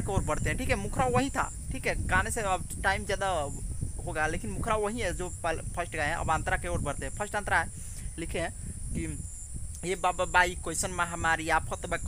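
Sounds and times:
man talking: 0.0 - 9.2, 9.8 - 12.0
high-pitched insect drone: 0.0 - 12.0.

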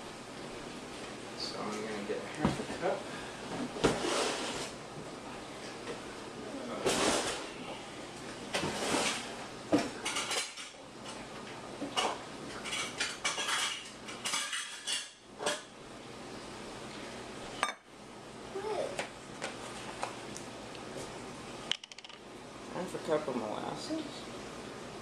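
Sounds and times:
dishes and utensils clattering: 8.6 - 11.2, 11.8 - 15.7.

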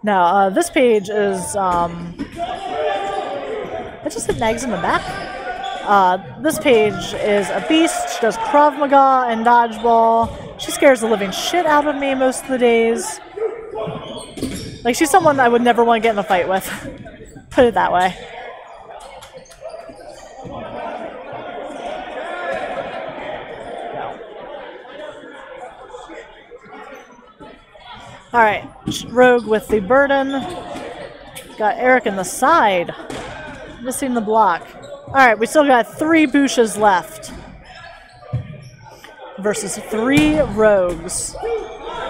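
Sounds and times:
players' voices echoing: 0.0 - 42.0
balls bouncing on hardwood floor: 10.2 - 10.5, 33.0 - 33.7.

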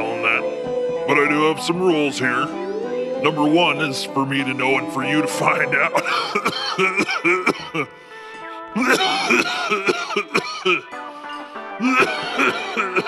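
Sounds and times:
background music: 0.0 - 13.0
cartoon character raspy laughter: 5.9 - 7.9, 8.8 - 10.9, 11.8 - 13.0.

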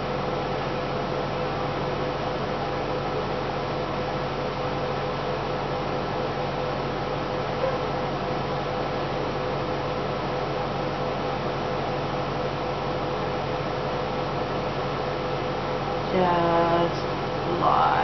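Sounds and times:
constant low hum: 0.0 - 18.0.

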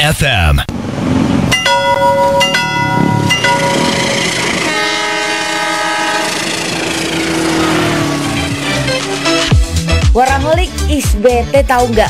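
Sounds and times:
level crossing warning chimes: 1.5 - 4.9
train horn blowing: 1.7 - 9.6.

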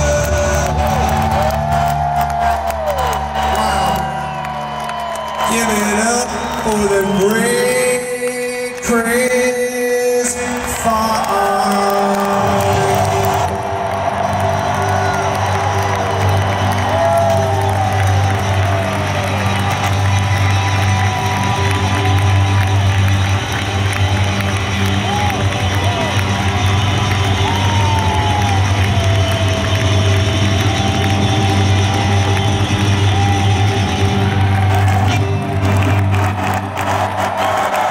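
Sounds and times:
crowd cheering and whooping: 0.0 - 37.9.

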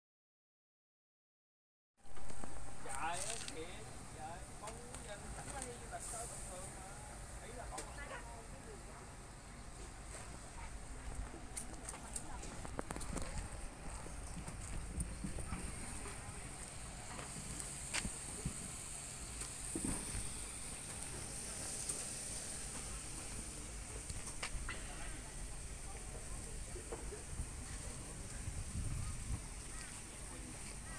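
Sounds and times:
faint background voices: 19.7 - 30.9
wind rumble on microphone: 27.1 - 29.8.

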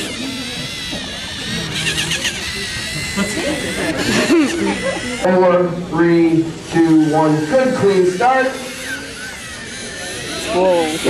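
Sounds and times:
small electric motors whining: 0.0 - 5.4, 6.2 - 11.0
spectators chattering: 0.0 - 11.0.

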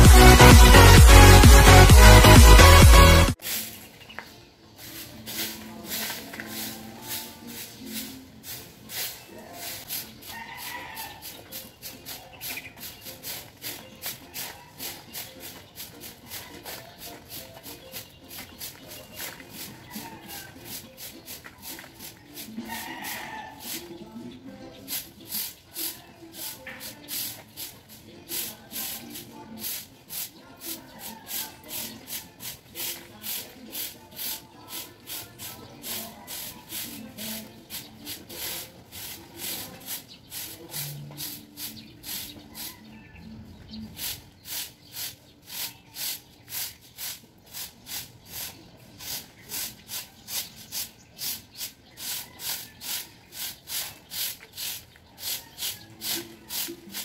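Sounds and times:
broom sweeping pavement: 0.0 - 57.0
faint voices: 3.3 - 57.0.

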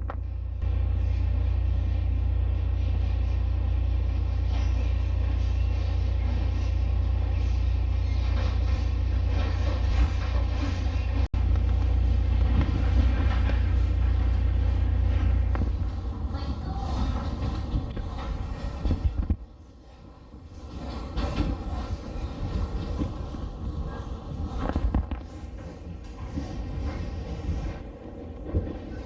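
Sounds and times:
train rumble and track noise: 0.0 - 29.0.

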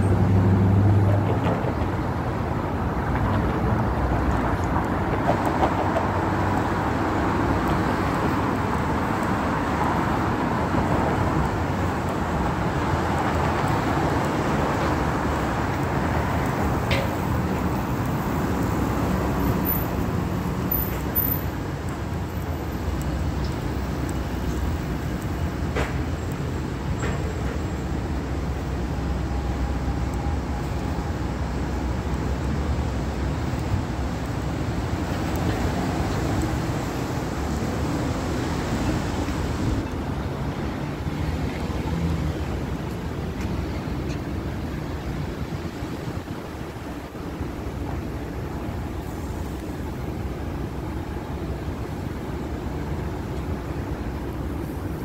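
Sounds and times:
rumble of cars on road: 0.0 - 55.0.

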